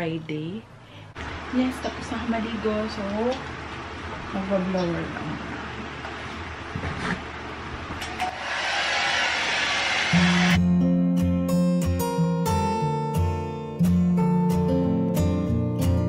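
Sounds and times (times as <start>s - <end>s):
strummed acoustic guitar music: 10.6s - 16.0s.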